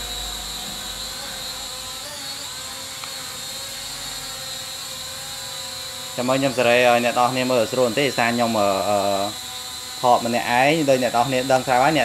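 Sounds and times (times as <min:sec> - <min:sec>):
quadcopter motors whining: 0:00.0 - 0:12.0.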